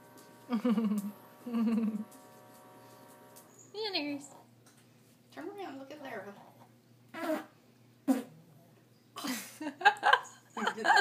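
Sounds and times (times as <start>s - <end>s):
low buzz: 0.0s - 3.5s
dog farting: 7.1s - 8.4s.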